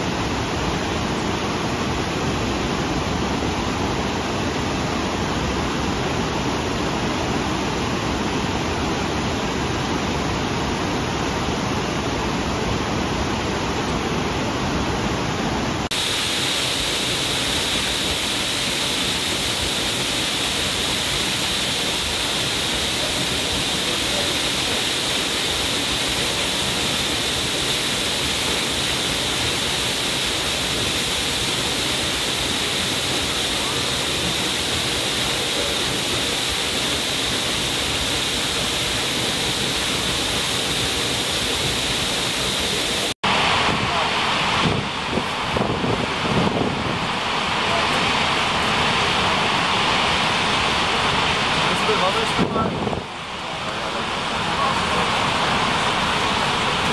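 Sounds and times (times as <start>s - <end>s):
waterfall rushing: 0.0s - 56.9s.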